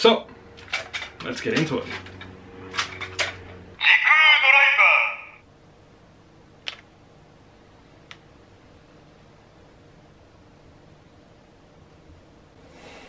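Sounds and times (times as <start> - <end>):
electronic toy voice: 3.8 - 5.4.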